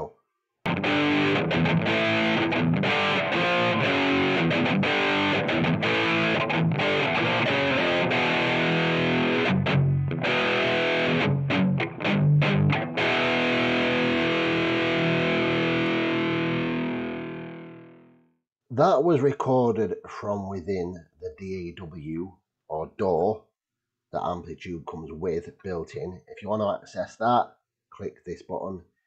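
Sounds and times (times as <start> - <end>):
distorted electric guitar riff: 0.7 - 18.2.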